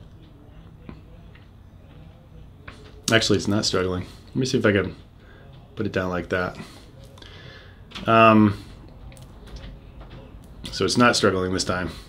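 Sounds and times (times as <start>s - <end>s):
faint low motor hum: 0.0s - 12.0s.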